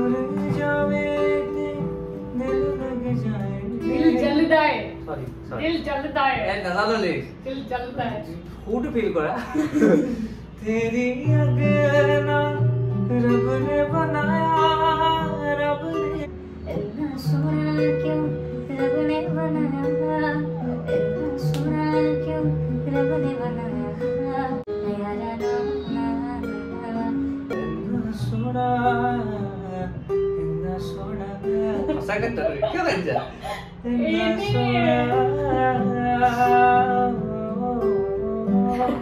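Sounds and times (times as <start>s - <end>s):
man singing slow song: 0.0s - 4.4s, 9.8s - 22.3s, 25.4s - 32.1s, 33.4s - 39.0s
acoustic guitar: 0.0s - 39.0s.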